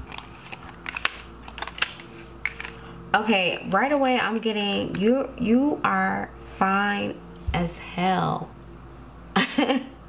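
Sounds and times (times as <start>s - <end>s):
cards clicking and tapping: 0.0s - 2.8s
faint steady hum: 0.0s - 10.0s.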